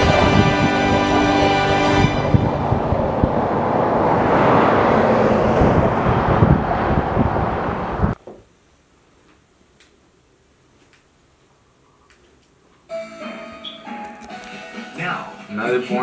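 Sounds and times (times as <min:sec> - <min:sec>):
roadside traffic roar: 0:00.0 - 0:08.2.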